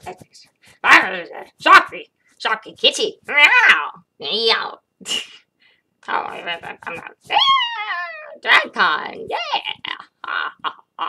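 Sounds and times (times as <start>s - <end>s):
choppy voice sound: 6.0s - 11.0s
woman imitating cat meow: 6.9s - 8.4s.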